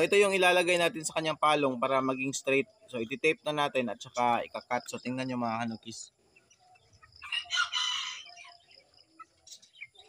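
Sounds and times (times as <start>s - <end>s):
chicken calling: 6.3s - 10.0s.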